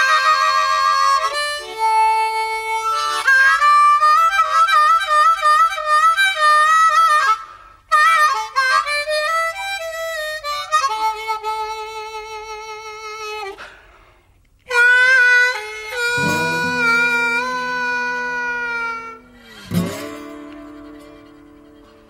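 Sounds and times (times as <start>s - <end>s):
harmonica playing bluesy melody: 0.0s - 13.6s, 14.6s - 22.0s.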